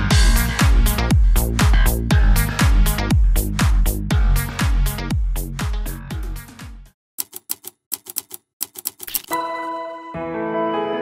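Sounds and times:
typewriter key clicks: 7.2s - 9.4s.

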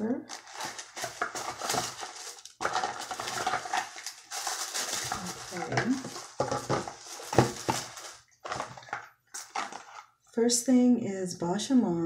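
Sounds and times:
packaged items being handled: 0.0s - 10.2s
tissue paper rustling and crinkling: 0.3s - 10.1s.

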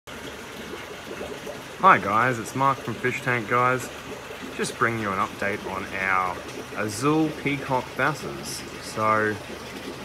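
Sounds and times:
aquarium water trickling: 0.1s - 10.0s.

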